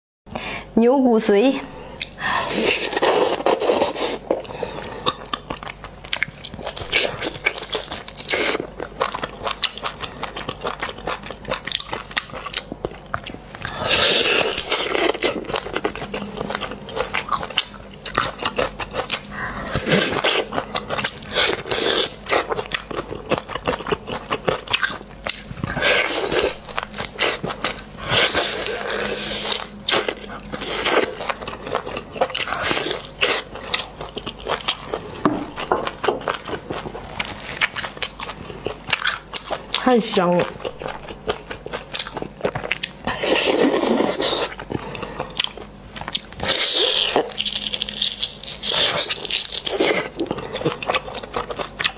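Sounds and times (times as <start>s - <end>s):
wet biting and chewing: 2.0s - 51.9s.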